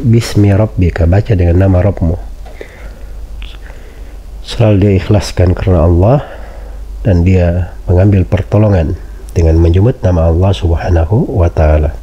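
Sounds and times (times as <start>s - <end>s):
man speaking: 0.0s - 2.3s, 3.4s - 3.7s, 4.4s - 12.0s
steady low hum: 0.0s - 12.0s
breathy mouth sounds: 2.5s - 4.0s.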